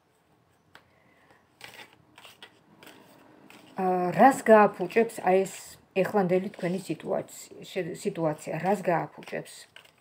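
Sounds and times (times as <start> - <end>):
cards shuffling: 0.8 - 3.8, 8.3 - 10.0.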